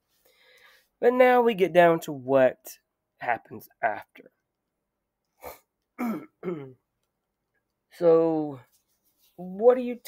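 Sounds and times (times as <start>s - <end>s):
man clearing his throat: 5.5s - 6.8s.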